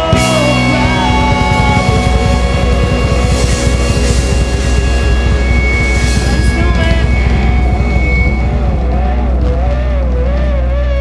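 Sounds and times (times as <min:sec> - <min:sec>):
lead guitar note with vibrato: 0:00.0 - 0:10.2
distorted guitars and bass: 0:00.0 - 0:11.0
drums: 0:00.0 - 0:11.0.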